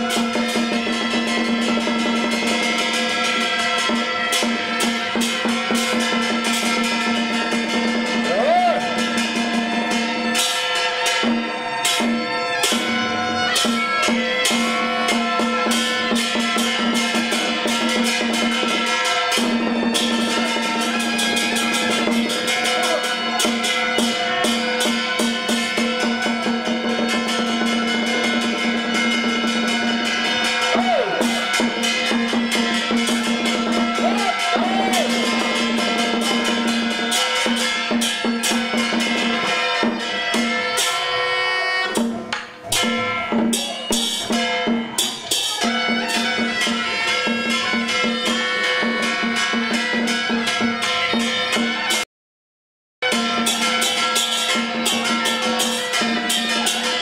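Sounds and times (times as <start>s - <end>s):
hand cymbal strikes: 0.0s - 52.0s, 53.0s - 57.0s
rapid drum strikes: 0.0s - 52.0s, 53.0s - 57.0s
wind instrument melody: 0.0s - 52.0s, 53.0s - 57.0s.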